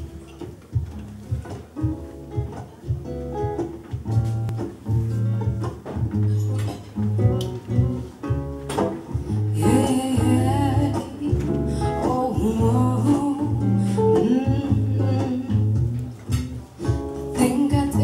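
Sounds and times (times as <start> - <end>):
acoustic guitar picking: 0.0 - 18.0
woman singing without words: 9.5 - 15.9, 17.3 - 18.0.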